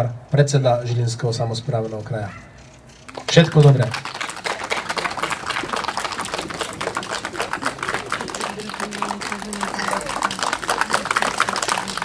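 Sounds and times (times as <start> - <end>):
audience applause: 3.1 - 12.0.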